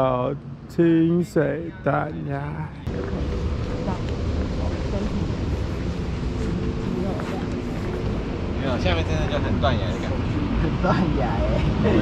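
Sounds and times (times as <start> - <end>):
wind rumbling on microphone: 2.9 - 10.8.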